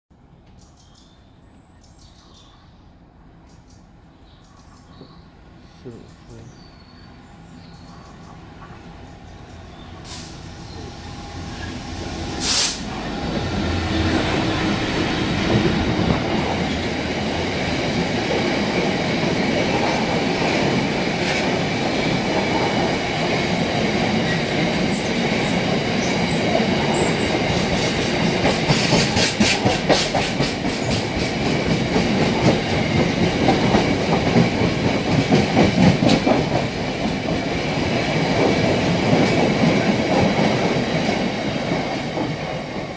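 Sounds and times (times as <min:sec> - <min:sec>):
diesel locomotive engine: 0:05.0 - 0:42.9
sharp burst of noise: 0:10.0 - 0:13.7
clickety-clack over rail joints: 0:15.4 - 0:42.9.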